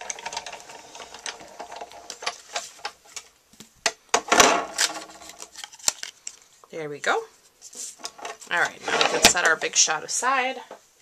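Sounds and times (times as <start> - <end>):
plastic scraping: 4.2 - 6.4, 7.7 - 9.8.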